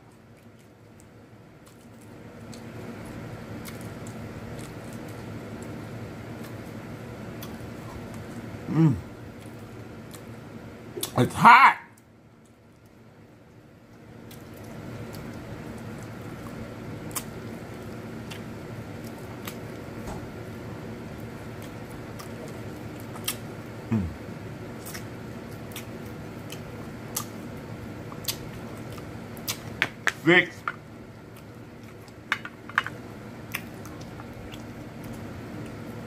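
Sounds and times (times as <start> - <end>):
wet eating clicks and smacks: 0.0 - 5.8, 6.4 - 8.5, 9.3 - 10.3, 11.0 - 11.2, 12.0 - 20.0, 21.2 - 23.8, 24.7 - 36.0
low background hum: 0.0 - 36.0.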